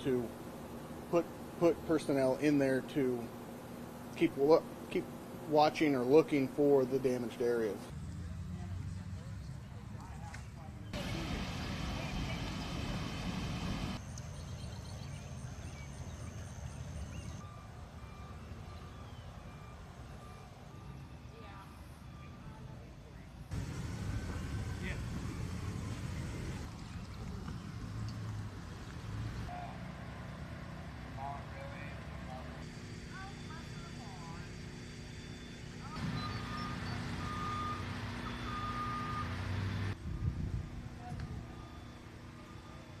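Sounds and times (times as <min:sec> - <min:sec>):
vehicle engines rumbling: 0:00.0 - 0:43.0
chirps: 0:14.0 - 0:17.6, 0:35.1 - 0:37.6.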